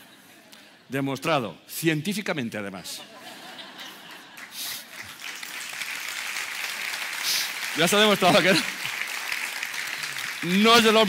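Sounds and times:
audience applauding: 4.1 - 11.0.

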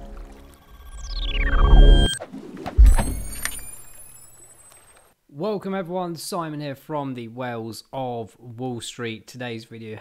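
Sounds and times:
electronic falling sweep: 0.6 - 4.7.

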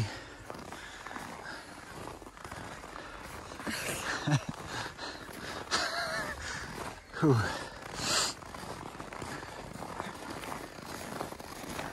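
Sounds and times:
outdoor background noise: 0.0 - 11.9.

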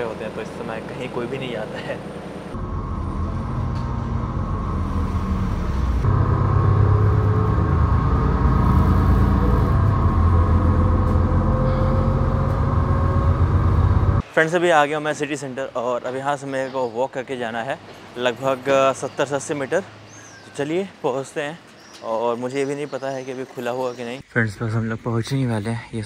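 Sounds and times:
bus engine drone: 0.0 - 14.3
whine rising in pitch: 2.2 - 14.2.

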